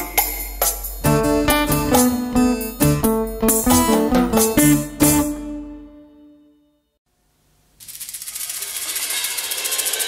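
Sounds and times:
light high-pitched percussion: 0:00.0 - 0:02.2.

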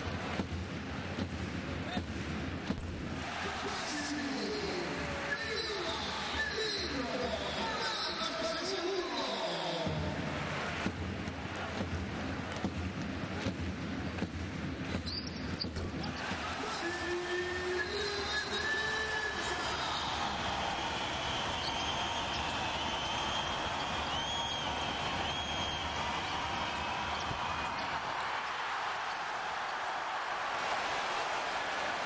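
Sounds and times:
crowd noise: 0:00.0 - 0:32.0
shoes squeaking on court: 0:14.9 - 0:16.3, 0:21.5 - 0:22.6, 0:25.4 - 0:28.3.

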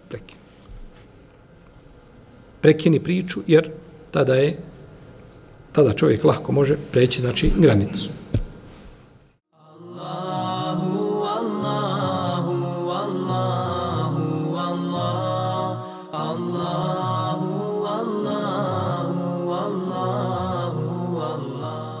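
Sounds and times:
low voices chanting a melody: 0:09.6 - 0:22.0.

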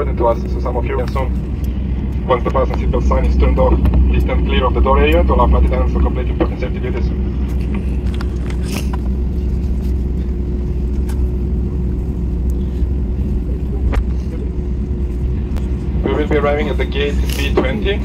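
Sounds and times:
aircraft engines idling rumble: 0:00.0 - 0:18.0
constant hum: 0:00.0 - 0:18.0.

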